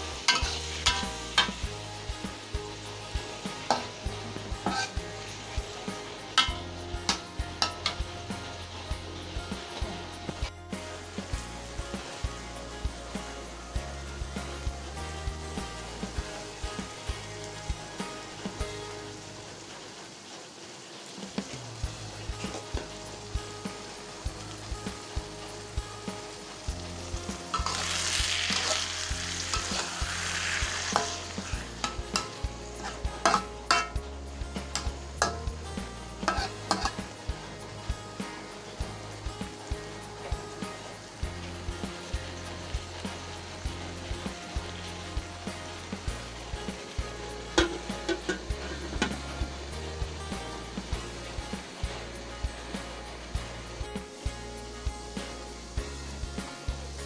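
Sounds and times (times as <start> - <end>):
spatula scraping a wok: 0.0 - 10.6, 26.9 - 37.7, 47.5 - 49.6
food sizzling in a wok: 0.0 - 57.0.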